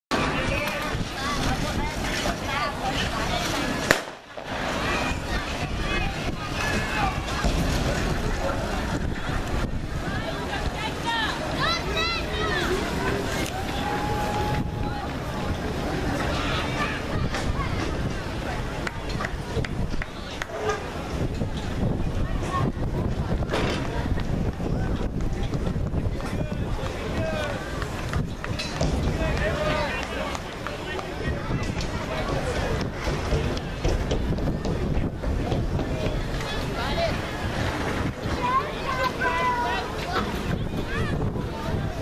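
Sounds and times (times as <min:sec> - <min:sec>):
faint voices of people: 0:00.1 - 0:42.0
wind buffeting microphone: 0:00.1 - 0:42.0
spectators calling out: 0:10.2 - 0:17.9.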